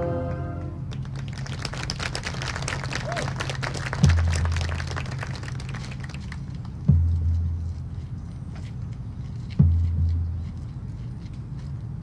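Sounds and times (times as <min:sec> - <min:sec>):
brass chord: 0:00.0 - 0:00.9
steady low rumble: 0:00.0 - 0:12.0
crowd clapping and applauding: 0:00.9 - 0:06.8.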